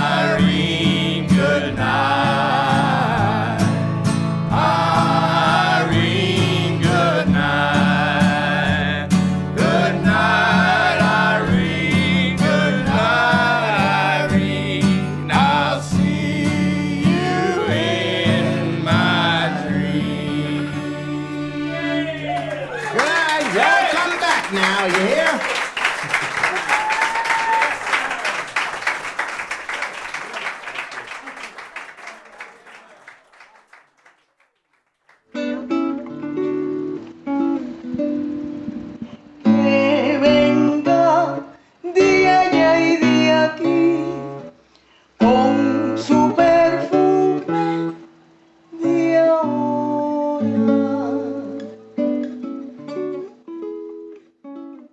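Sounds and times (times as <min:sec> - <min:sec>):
acoustic guitar playing: 0:00.0 - 0:22.7, 0:35.3 - 0:44.6, 0:45.2 - 0:54.9
audience applause: 0:22.0 - 0:35.3.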